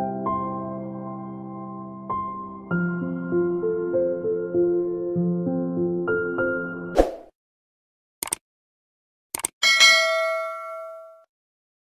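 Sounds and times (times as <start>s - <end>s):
quick clicks: 8.2s - 8.4s, 9.3s - 9.6s
bell ding: 9.6s - 11.3s.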